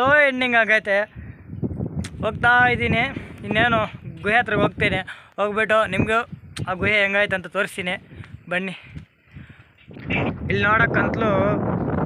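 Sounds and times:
wind buffeting microphone: 0.0 - 12.0
man talking: 2.1 - 8.8.

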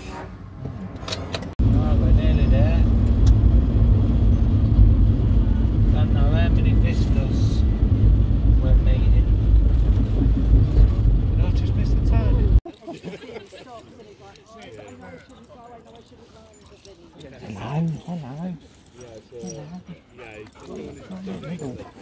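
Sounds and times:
car cabin road rumble: 0.2 - 12.6.

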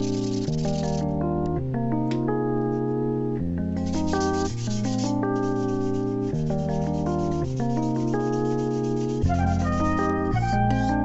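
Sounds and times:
background music of held notes: 0.0 - 11.0
knife blade scraping on abrasive: 3.9 - 11.0.

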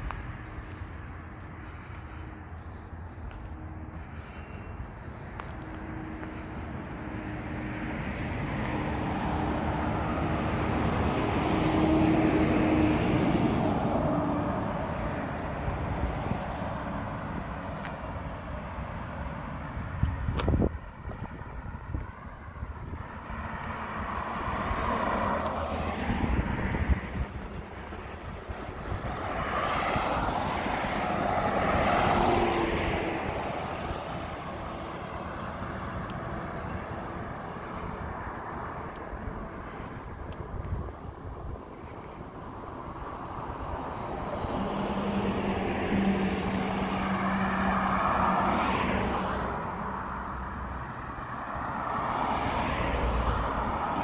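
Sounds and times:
cars passing: 0.0 - 54.0.

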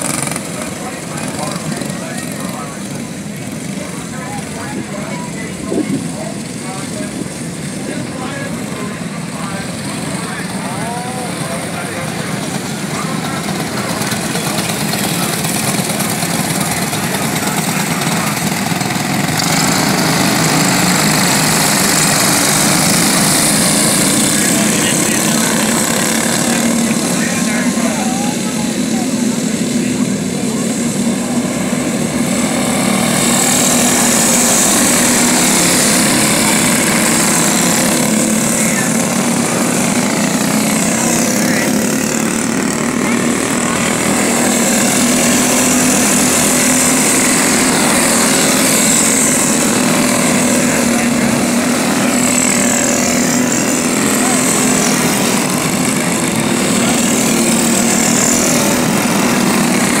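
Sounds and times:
kart engines whining: 0.0 - 60.0.

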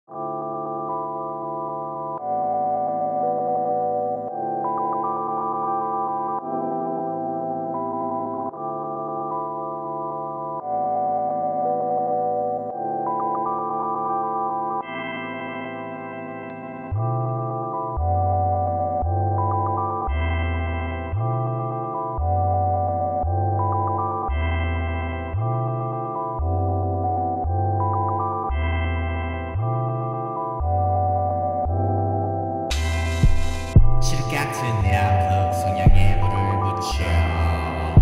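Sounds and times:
sustained keyboard chords: 0.1 - 38.0
deep bass: 32.7 - 38.0.

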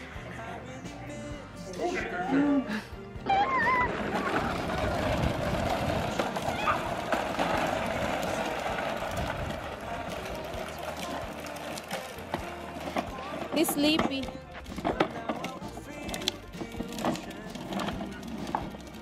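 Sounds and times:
plastic toy wheels rolling on concrete: 3.3 - 19.0.

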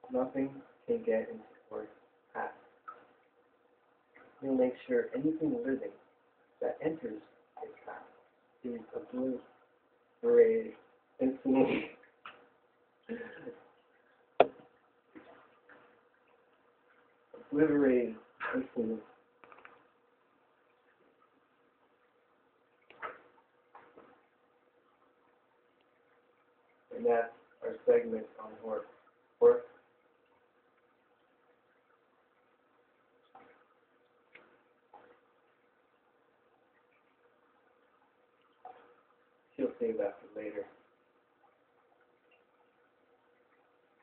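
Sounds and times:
faint steady hum: 0.0 - 44.0
faint sharp clicks: 19.4 - 19.9, 34.3 - 36.0.

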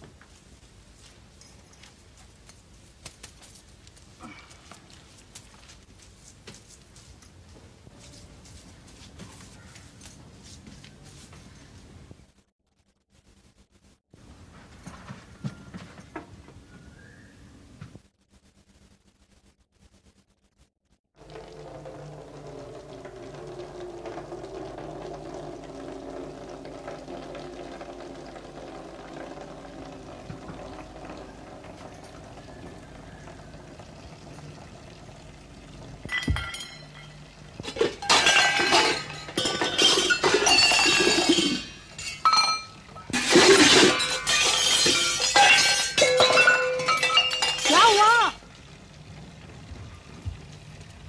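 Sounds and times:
dishes clattering: 36.1 - 48.0.

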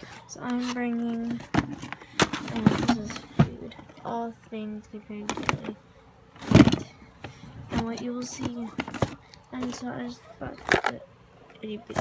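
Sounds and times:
plastic containers rustling: 0.0 - 4.3, 5.0 - 12.0.

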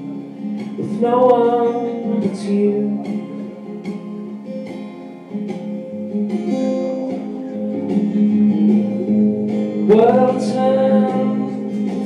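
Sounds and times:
person singing: 0.0 - 4.2, 7.5 - 12.0
acoustic guitar strumming chords: 0.0 - 12.0.

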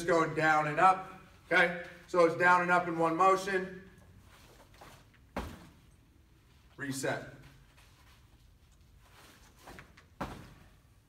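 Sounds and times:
feet landing thud on turf: 5.3 - 5.8, 9.6 - 10.7.

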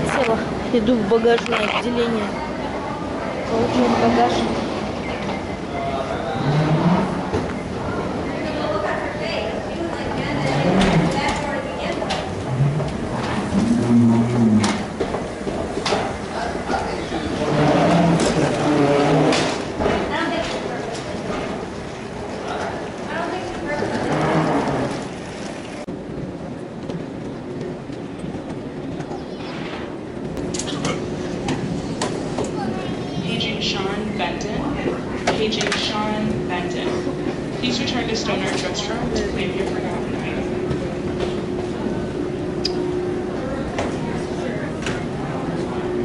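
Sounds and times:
indistinct voices: 0.0 - 25.9
people chattering: 0.0 - 28.0, 30.4 - 46.0
baggage carousel rumbling: 0.0 - 46.0
steady background noise: 0.0 - 46.0.

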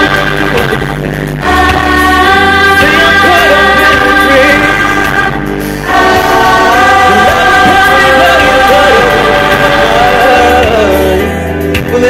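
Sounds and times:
group of singers singing: 0.0 - 11.5
backing chords and bass: 0.0 - 12.0.

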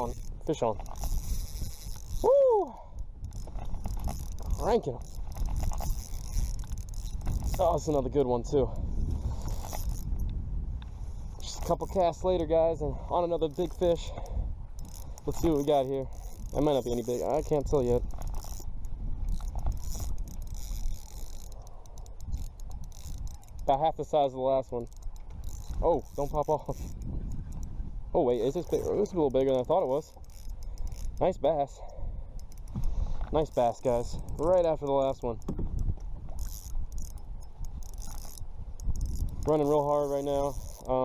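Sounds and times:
fishing reel clicking: 0.0 - 10.4, 11.4 - 41.0
wind rumble on microphone: 0.0 - 41.0.

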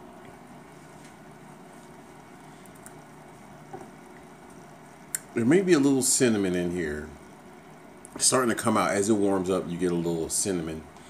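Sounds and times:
room hiss: 0.0 - 11.0.

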